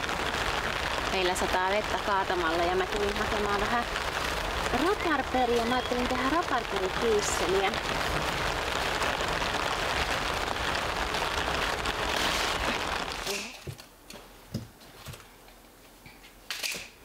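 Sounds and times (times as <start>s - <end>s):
heavy rain pouring: 0.0s - 13.7s.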